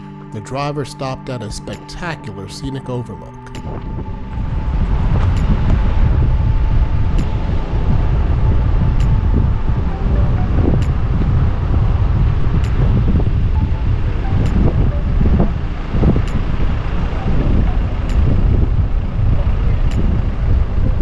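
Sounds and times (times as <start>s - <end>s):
wind buffeting microphone: 3.4s - 21.0s.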